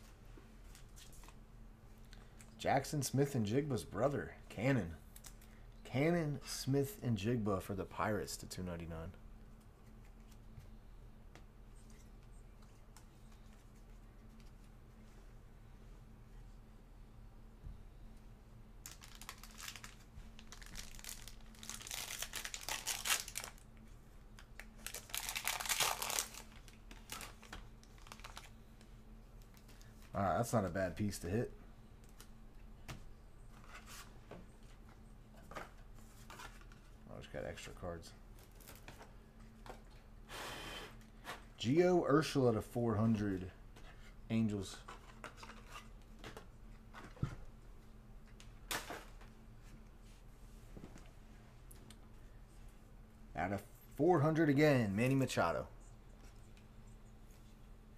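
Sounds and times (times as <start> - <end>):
foil wrapper tearing and crinkling: 18.8 - 23.6, 24.5 - 28.5.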